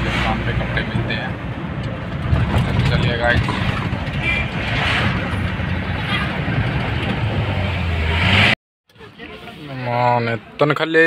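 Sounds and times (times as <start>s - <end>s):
vehicle engine humming: 0.0s - 9.1s
road noise: 0.0s - 11.0s.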